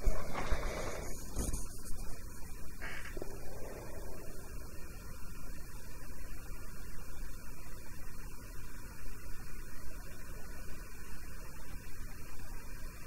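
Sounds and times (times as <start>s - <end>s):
microphone hum and hiss: 0.0s - 13.0s.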